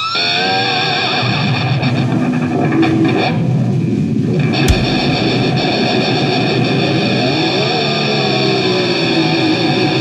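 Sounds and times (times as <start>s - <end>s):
heavy metal band playing live: 4.7s - 5.9s
sharp thump: 4.7s - 6.4s.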